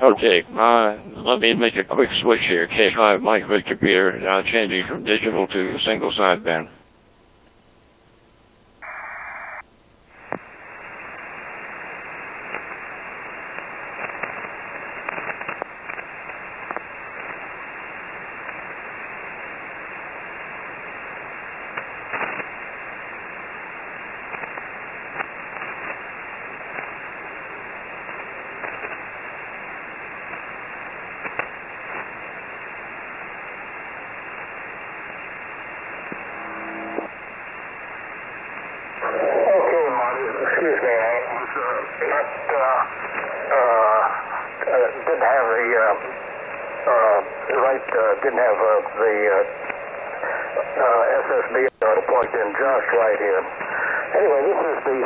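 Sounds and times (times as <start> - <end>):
radio static hiss with crackles: 0.0 - 55.0.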